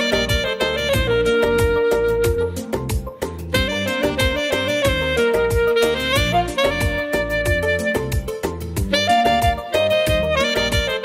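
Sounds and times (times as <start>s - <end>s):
alto saxophone melody: 0.0s - 11.0s
backing track drum beat: 0.0s - 11.0s.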